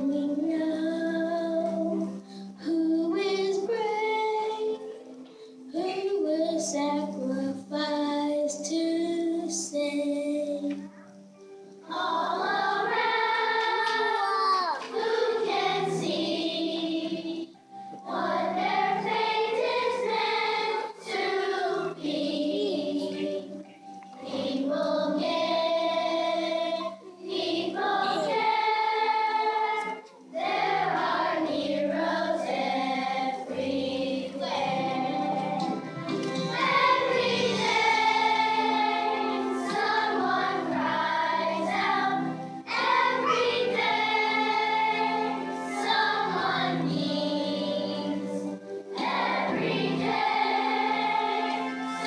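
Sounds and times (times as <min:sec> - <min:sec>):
children's choir singing: 0:00.0 - 0:11.2, 0:11.8 - 0:52.0.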